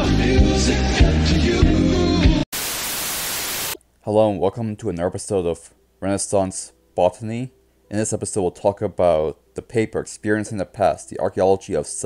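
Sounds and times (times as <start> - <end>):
hissing static burst: 2.5 - 3.8.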